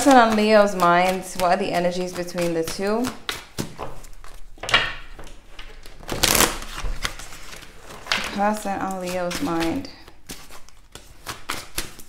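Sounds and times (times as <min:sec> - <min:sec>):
cards being shuffled: 0:00.0 - 0:12.0.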